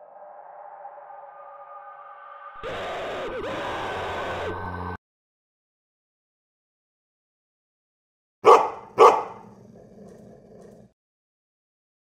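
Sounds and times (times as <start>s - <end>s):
dog barking: 8.4s - 10.9s.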